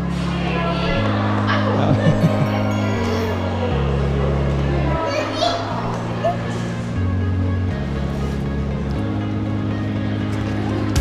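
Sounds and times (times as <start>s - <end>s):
background music with bass notes: 0.0s - 5.0s, 5.9s - 11.0s.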